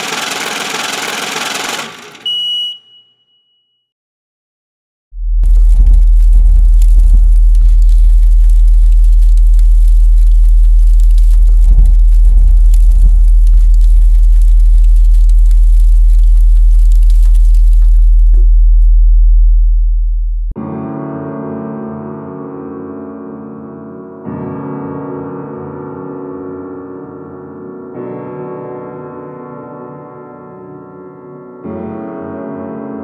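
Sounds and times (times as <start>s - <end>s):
sub-bass drone: 5.1s - 20.6s
crackling static and clicks: 5.4s - 19.4s
piano: 5.4s - 33.0s.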